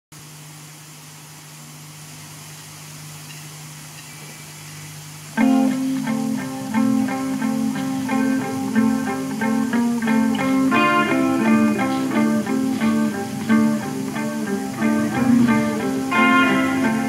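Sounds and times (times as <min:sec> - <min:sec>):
low hum and hiss: 0:00.2 - 0:17.0
rock guitar riff: 0:05.4 - 0:17.0.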